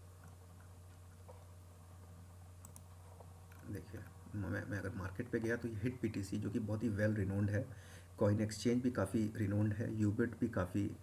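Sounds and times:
steady low hum: 0.0 - 11.0
computer mouse clicks: 2.6 - 3.6
man speaking: 3.6 - 11.0.

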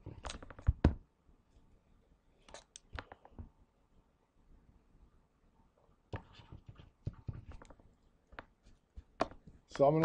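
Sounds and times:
stylus tapping on tablet: 6.1 - 9.6.

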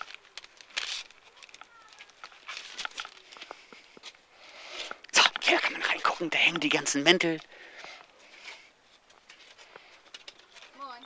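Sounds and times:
foil wrapping crinkling: 0.0 - 4.2.

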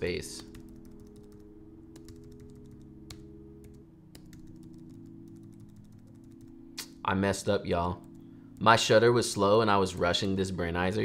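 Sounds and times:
keyboard keys clicking: 0.4 - 6.9.

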